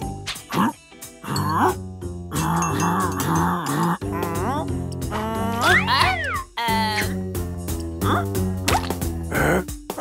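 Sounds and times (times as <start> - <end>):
light background music: 0.0 - 10.0
cartoon character squeaky voice: 5.2 - 7.2.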